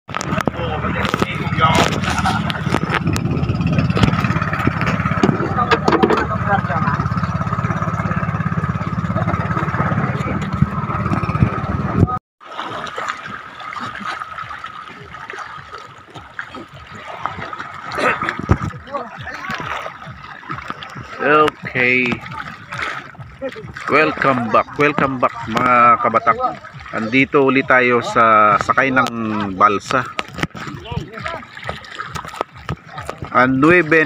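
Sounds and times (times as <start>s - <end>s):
boat engine rumbling with whine: 0.1s - 12.2s, 13.1s - 34.0s
noisy background: 0.1s - 12.2s, 13.3s - 34.0s
people talking: 0.2s - 2.9s, 5.2s - 7.2s, 8.0s - 10.6s, 18.0s - 19.8s, 21.2s - 31.5s, 33.3s - 34.0s.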